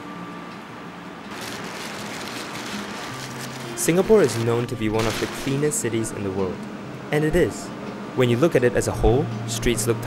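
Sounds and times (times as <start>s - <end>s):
hissing outdoor background noise: 1.0s - 7.6s.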